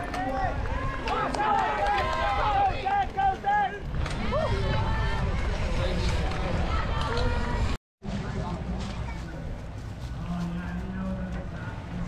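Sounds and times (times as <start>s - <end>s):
spectators shouting and cheering: 0.0s - 7.8s.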